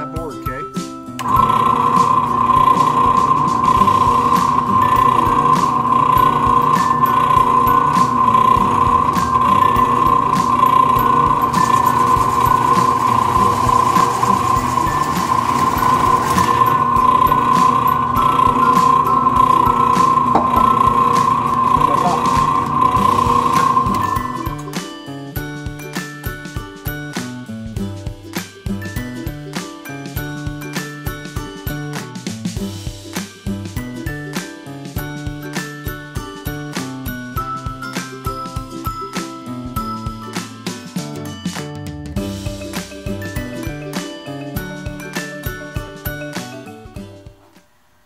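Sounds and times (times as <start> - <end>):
drill press high whine: 1.2 - 24.8
hole saw cutting wood: 1.2 - 24.8.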